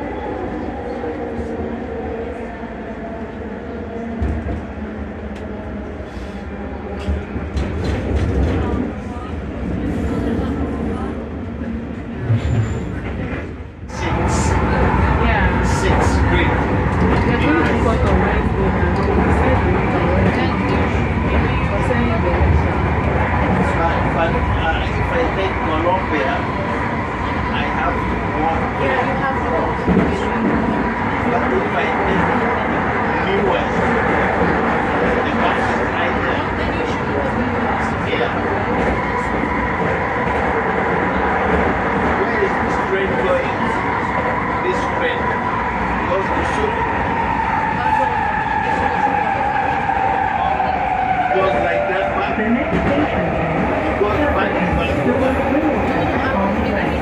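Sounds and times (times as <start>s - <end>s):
train wheels rumbling on rails: 6.9s - 57.0s.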